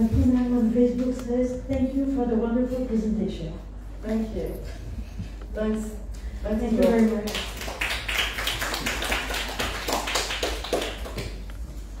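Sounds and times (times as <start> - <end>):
audience applauding: 6.9 - 11.5.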